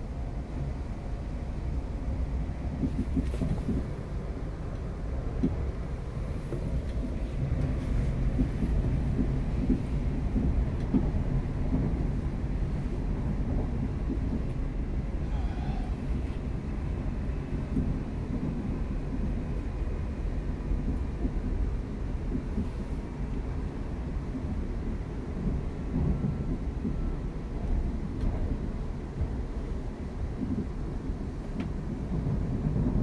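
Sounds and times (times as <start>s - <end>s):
train wheels on track: 0.0s - 33.0s
train body noise: 2.5s - 33.0s.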